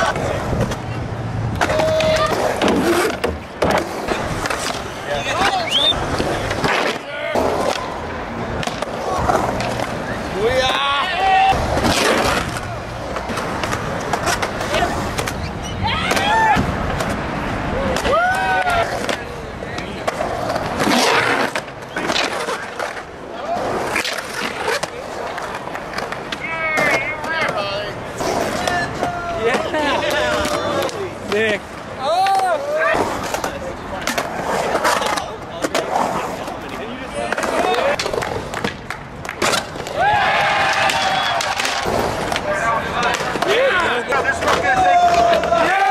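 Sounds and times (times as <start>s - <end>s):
skateboard wheels rolling on concrete: 0.0s - 45.9s
skateboards clacking on concrete: 0.0s - 45.9s
people shouting: 10.5s - 12.9s, 15.6s - 16.8s, 17.6s - 19.1s, 39.9s - 45.9s.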